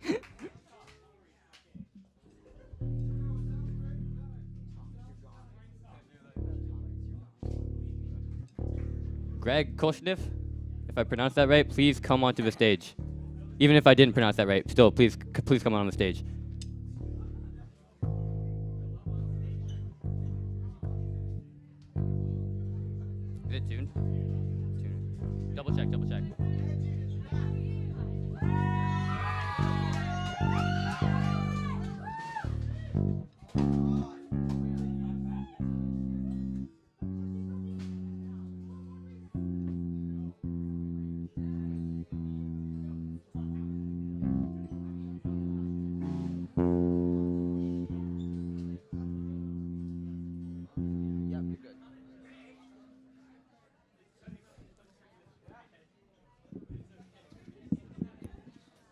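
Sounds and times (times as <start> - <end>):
electric bass notes plucked: 2.7 - 53.4, 56.6 - 58.4
electric guitar high bent notes: 6.4 - 53.4.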